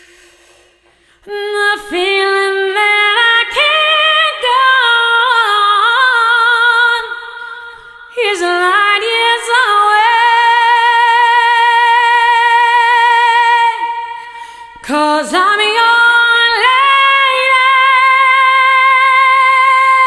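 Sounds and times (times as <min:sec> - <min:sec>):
woman singing slow ballad: 0:01.2 - 0:20.0.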